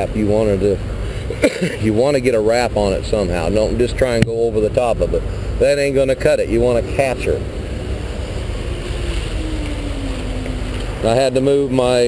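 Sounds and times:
truck engines droning: 0.0s - 12.0s
engine tone sliding down: 6.0s - 12.0s.

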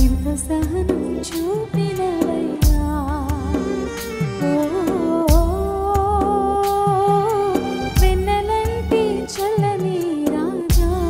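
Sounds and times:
instrumental accompaniment with bass: 0.0s - 11.0s
heavy low beat: 2.6s - 9.2s.

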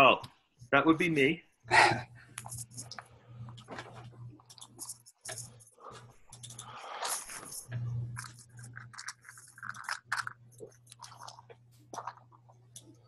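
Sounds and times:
steady low hum: 0.6s - 13.0s
small clicks and crackles: 2.4s - 13.0s.

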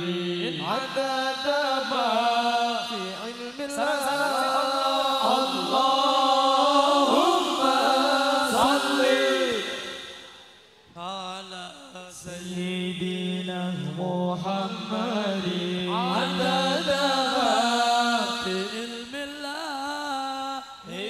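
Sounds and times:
men chanting devotional song: 0.0s - 21.0s.

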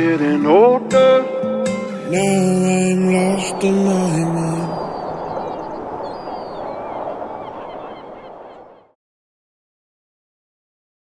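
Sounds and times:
birds chirping: 2.1s - 9.0s
steady rushing noise: 2.8s - 8.7s.

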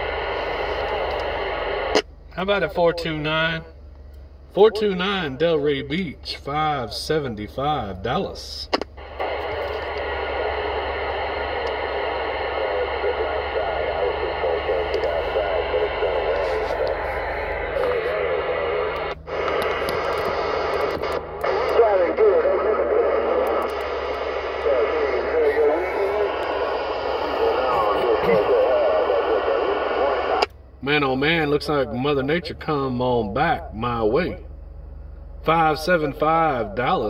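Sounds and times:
radio band noise hiss: 0.0s - 3.7s, 4.5s - 34.4s
faint garbled radio voices: 0.0s - 3.8s, 4.5s - 30.5s.

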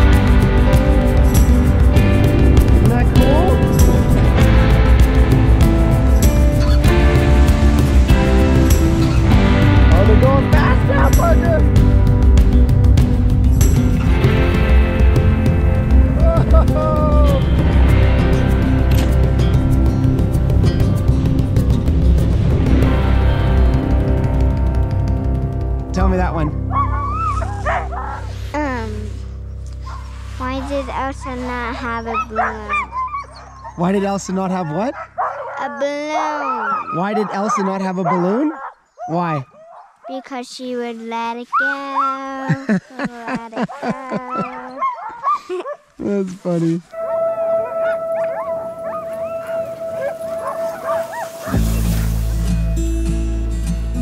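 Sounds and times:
background music: 0.0s - 39.9s, 46.9s - 54.0s
dogs yipping and whining: 26.7s - 28.3s, 31.8s - 40.1s, 41.5s - 42.3s, 43.6s - 45.9s, 47.0s - 51.8s.

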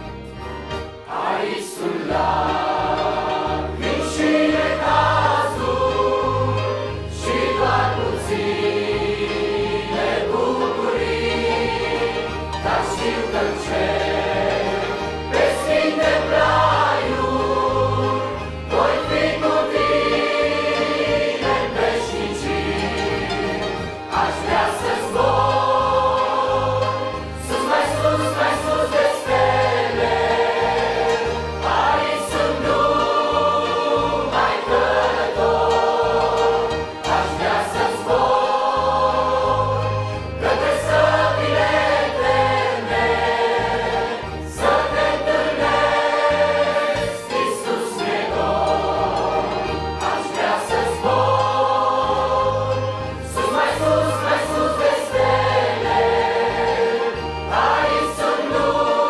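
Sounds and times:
accordions: 0.0s - 59.0s
choir singing a hymn: 0.0s - 59.0s.

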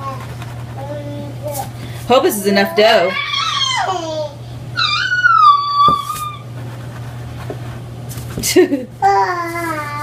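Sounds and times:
steady low hum: 0.0s - 10.0s
toddler squealing: 2.9s - 4.0s, 4.8s - 6.5s.

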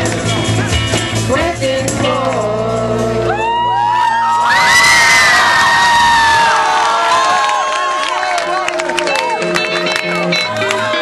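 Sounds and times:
band music: 0.0s - 5.0s, 7.8s - 11.0s
children cheering and screaming: 3.2s - 9.4s.

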